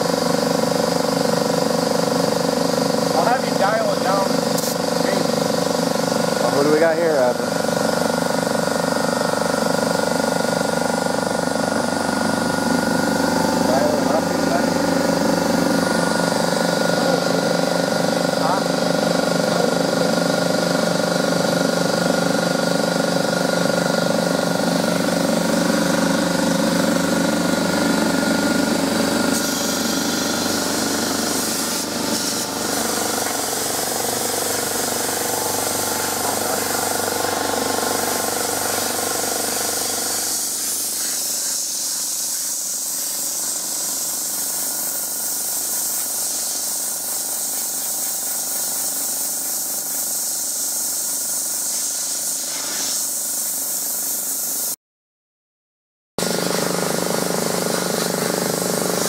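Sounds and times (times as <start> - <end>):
compressor humming: 0.0 - 50.2, 56.2 - 59.0
sandblasting gun hissing on metal: 3.1 - 9.2, 24.0 - 54.8, 56.2 - 59.0.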